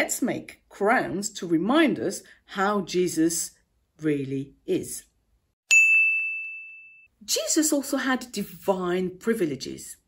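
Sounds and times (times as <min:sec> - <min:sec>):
bright electronic ding: 0:05.7 - 0:07.1.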